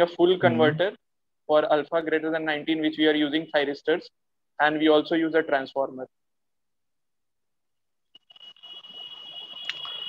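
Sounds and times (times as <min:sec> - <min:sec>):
steady high-pitched tone: 0:08.2 - 0:10.0.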